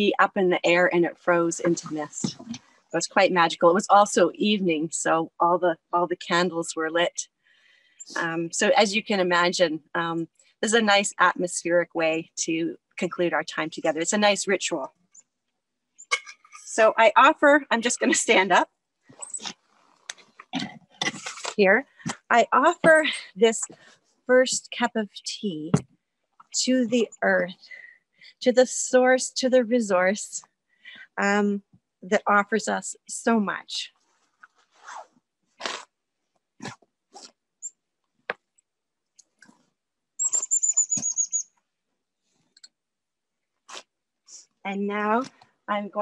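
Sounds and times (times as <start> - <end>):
small bird calling high notes: 40.2 - 41.4.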